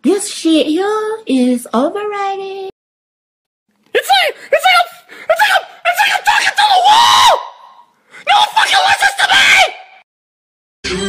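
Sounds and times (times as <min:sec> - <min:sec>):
person screeching: 0:04.0 - 0:10.0.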